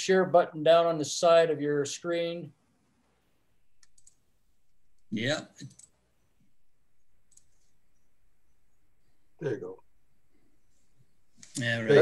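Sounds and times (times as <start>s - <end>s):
computer mouse click: 3.8s - 4.2s, 7.3s - 7.7s.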